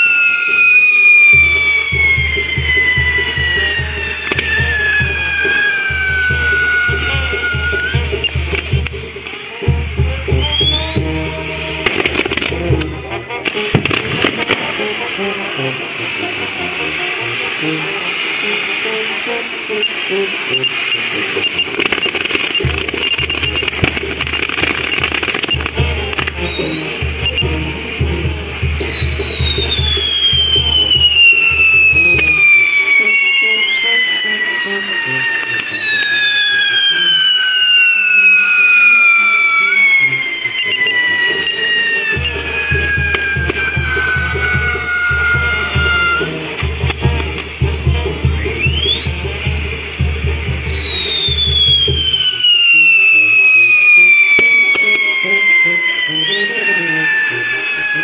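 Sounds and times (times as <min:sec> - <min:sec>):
shrill firework whistles sliding down: 0:00.0 - 0:58.0.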